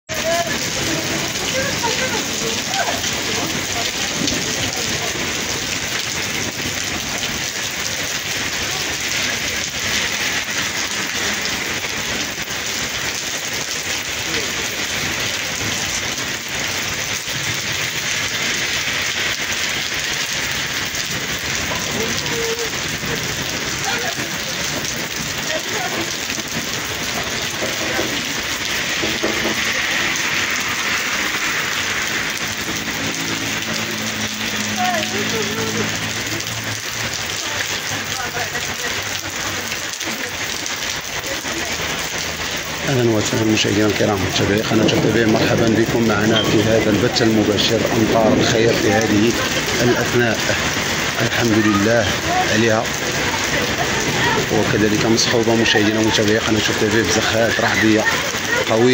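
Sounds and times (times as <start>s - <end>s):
heavy rain on pavement: 0.0s - 58.9s.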